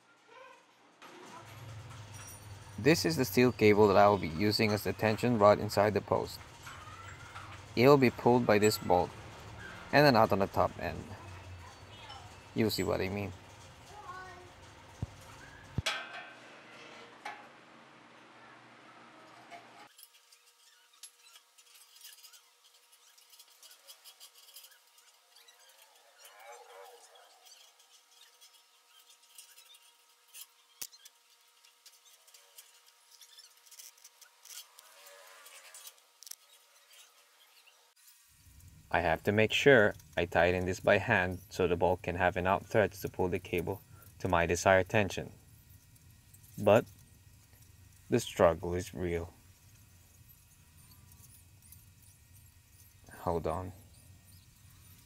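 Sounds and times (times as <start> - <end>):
faint high-pitched squeaks: 0.0 - 15.8, 18.4 - 38.2
wire rope scraping on metal: 19.3 - 55.0.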